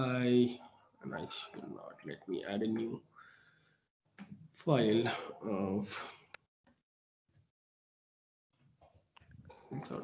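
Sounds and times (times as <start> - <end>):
faint muffled sounds: 0.0 - 3.0, 9.4 - 10.0
man's voice: 0.0 - 3.0, 4.7 - 6.3.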